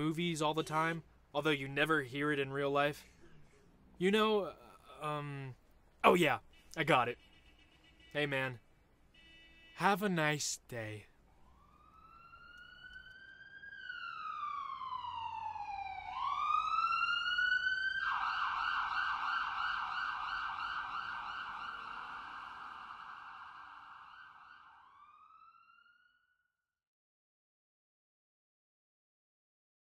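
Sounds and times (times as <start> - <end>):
emergency vehicle siren wailing: 11.3 - 26.2.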